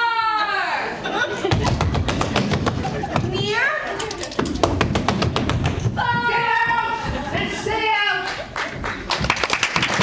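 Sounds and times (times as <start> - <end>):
rapid sharp claps: 8.3 - 10.0.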